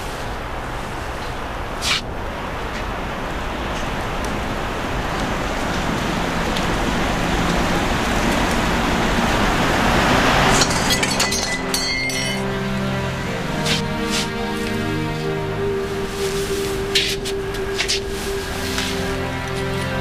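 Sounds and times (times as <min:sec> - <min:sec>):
steady rushing noise: 0:00.0 - 0:20.0
short sharp hiss: 0:01.8 - 0:02.0.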